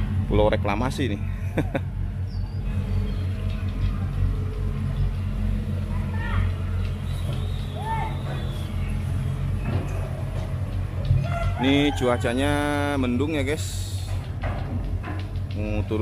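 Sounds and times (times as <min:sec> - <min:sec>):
excavator diesel engine droning: 0:00.0 - 0:16.0.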